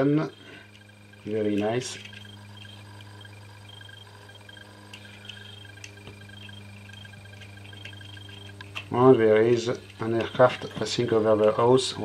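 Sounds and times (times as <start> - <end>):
aircraft drone overhead: 0.0 - 12.0
low hum: 0.0 - 12.0.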